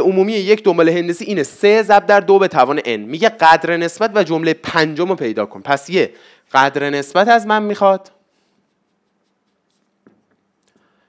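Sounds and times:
marker pen writing on whiteboard: 8.3s - 10.7s.

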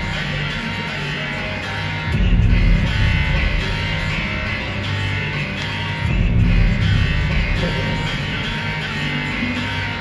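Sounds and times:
heavy low bass: 0.0s - 10.0s
loud live concert music: 0.0s - 10.0s.

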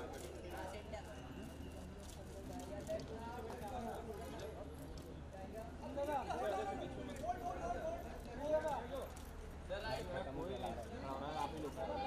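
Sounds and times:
crowd chatter and calls: 0.0s - 12.0s.

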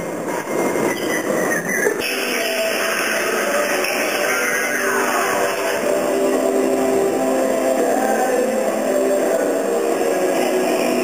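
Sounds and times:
noisy experimental music: 0.0s - 11.0s.

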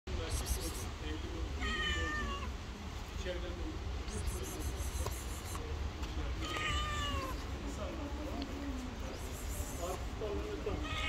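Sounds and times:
cat meowing: 1.6s - 2.5s, 6.4s - 7.4s, 10.7s - 11.0s.

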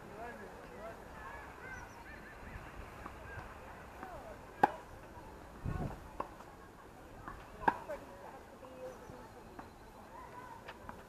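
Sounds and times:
tennis ball struck by racket: 3.0s - 5.0s, 7.2s - 8.0s.

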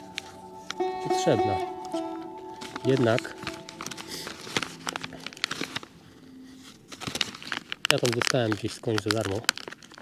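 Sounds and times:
plastic packet crinkling: 2.6s - 10.0s.

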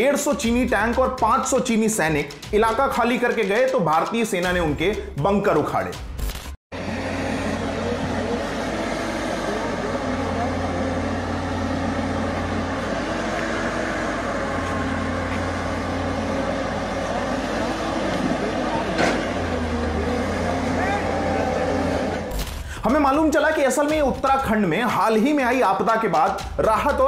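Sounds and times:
excavator diesel engines: 6.8s - 23.1s.

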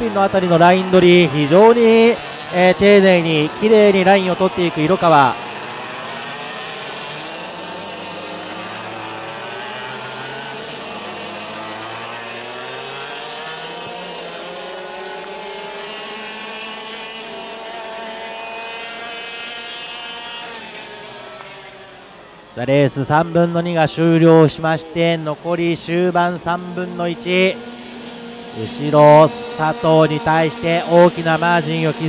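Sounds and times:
racing kart engines: 0.0s - 32.0s.

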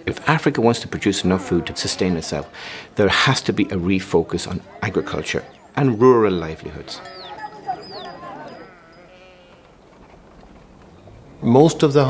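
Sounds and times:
faint outdoor background: 0.0s - 12.0s
sheep bleating: 6.8s - 9.8s.

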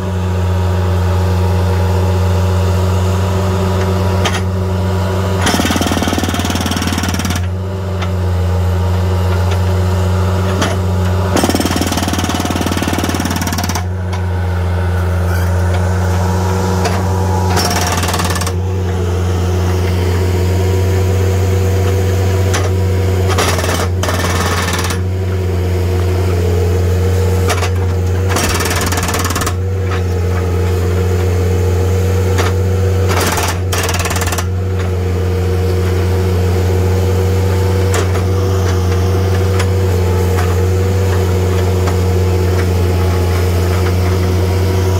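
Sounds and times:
engine drone: 0.0s - 44.9s
hydraulic breaker hammering concrete: 3.6s - 4.6s, 5.2s - 8.2s, 9.1s - 14.4s, 15.0s - 25.5s, 26.3s - 44.9s.

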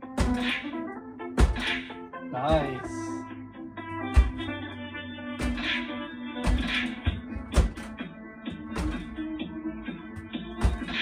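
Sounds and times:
gloved punches on foam pads: 0.0s - 0.7s, 1.4s - 1.8s, 4.1s - 4.5s, 5.4s - 5.8s, 6.4s - 8.0s, 8.6s - 9.2s, 10.2s - 11.0s
music with guitar: 0.0s - 11.0s.

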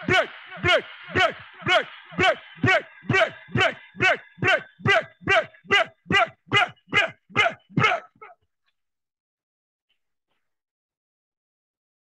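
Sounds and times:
man shouting: 0.0s - 8.4s.

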